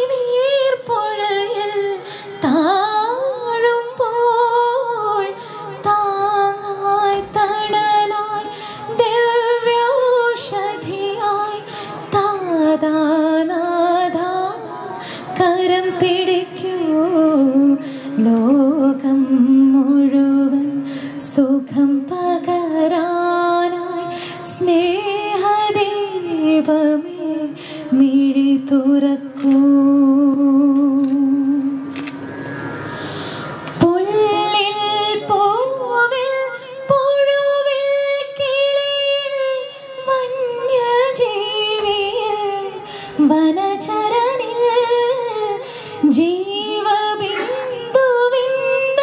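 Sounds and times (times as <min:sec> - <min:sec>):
woman singing a devotional song: 0:00.0 - 0:31.8, 0:33.8 - 0:49.0.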